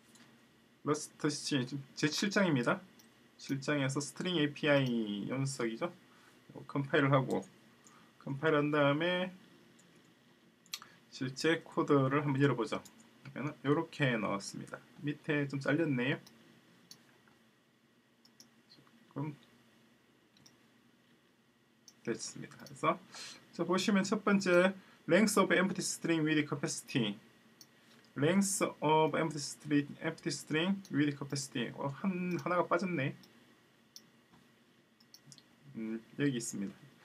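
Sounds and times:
computer mouse clicks: 0:18.2 - 0:19.5, 0:33.2 - 0:34.1, 0:35.0 - 0:35.5
computer mouse click: 0:35.0 - 0:35.5.

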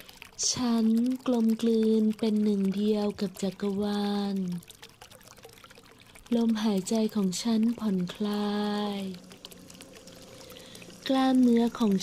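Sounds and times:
faint steady tone: 0:00.0 - 0:12.0
trickling pouring water: 0:00.0 - 0:12.0.

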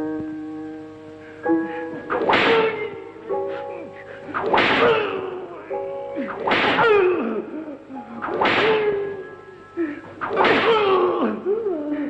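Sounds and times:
whip cracks: 0:02.1 - 0:02.7, 0:04.4 - 0:05.2, 0:06.2 - 0:07.0, 0:08.2 - 0:09.0, 0:10.2 - 0:11.0.

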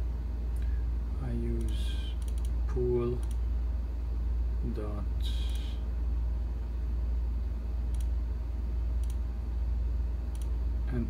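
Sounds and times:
steady low hum: 0:00.0 - 0:11.0
computer mouse clicks: 0:01.6 - 0:02.6, 0:03.2 - 0:03.4, 0:07.9 - 0:08.2, 0:09.0 - 0:09.2, 0:10.3 - 0:10.6.

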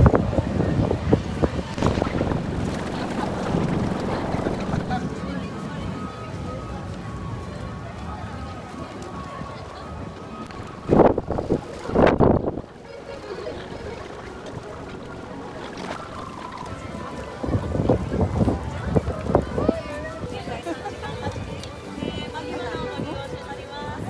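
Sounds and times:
crowd talking: 0:00.0 - 0:24.0
faint background music: 0:00.0 - 0:24.0.

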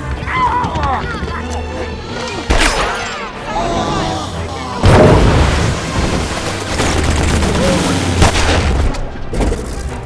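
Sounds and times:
film music and effects: 0:00.0 - 0:10.0.

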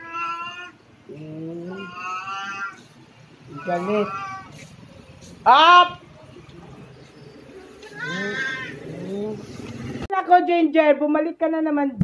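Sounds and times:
cat meowing: 0:00.0 - 0:00.8, 0:01.7 - 0:02.9, 0:03.5 - 0:04.6.

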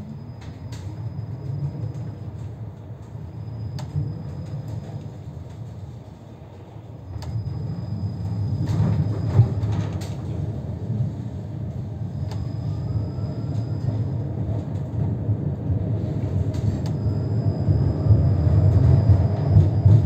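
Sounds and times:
tram rumbling on rails: 0:00.0 - 0:20.0.

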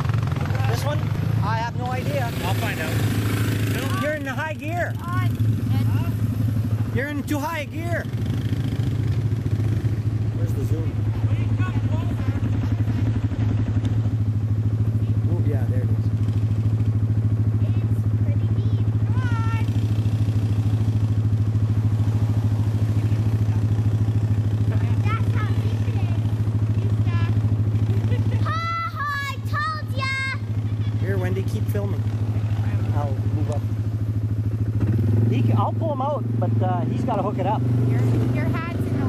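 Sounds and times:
atv engine droning: 0:00.0 - 0:39.0
voices calling out: 0:00.0 - 0:39.0.

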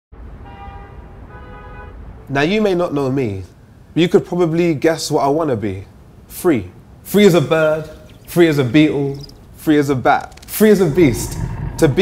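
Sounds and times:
low background rumble: 0:10.6 - 0:12.0.

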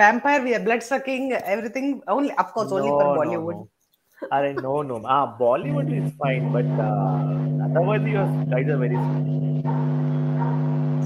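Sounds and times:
steady low hum: 0:02.6 - 0:03.6, 0:04.2 - 0:11.0.

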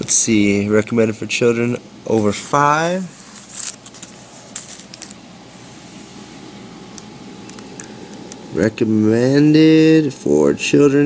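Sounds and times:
plastic wrapper crinkling: 0:02.8 - 0:05.2.

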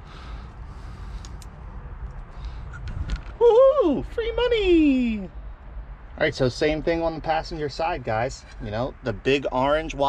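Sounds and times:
small clicks and scrapes: 0:01.2 - 0:03.4.

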